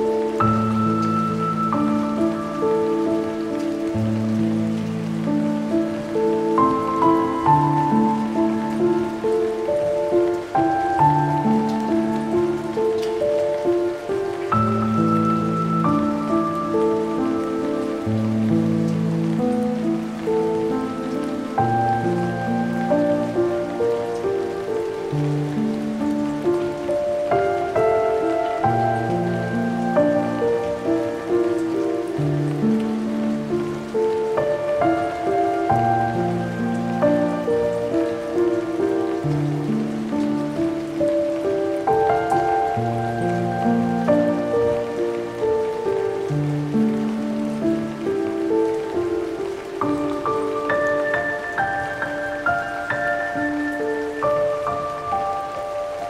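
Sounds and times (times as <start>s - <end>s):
rain falling: 0.0s - 56.0s
slow melancholic piano music: 0.0s - 56.0s.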